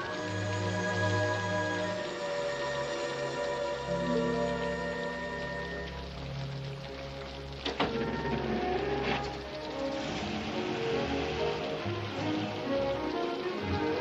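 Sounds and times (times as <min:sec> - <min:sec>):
falling rain hiss: 0:00.0 - 0:14.0
orchestral film music: 0:00.0 - 0:14.0.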